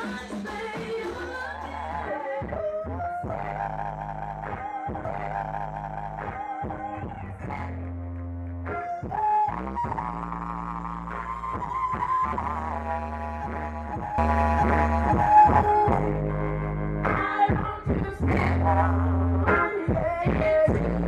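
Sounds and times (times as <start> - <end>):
female vocal group singing: 0.0 - 7.8, 17.0 - 21.0
sustained low bass notes: 1.1 - 8.8, 9.6 - 21.0.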